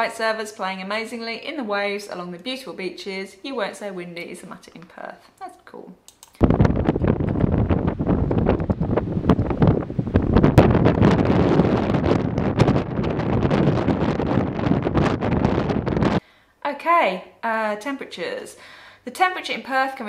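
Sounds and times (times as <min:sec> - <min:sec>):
gusty wind buffeting microphone: 0:06.4 - 0:16.2.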